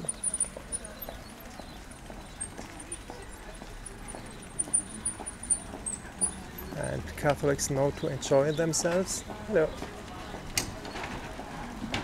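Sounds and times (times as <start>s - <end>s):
footsteps on paving stones: 0.0s - 7.4s, 8.5s - 12.0s
low street background: 0.0s - 12.0s.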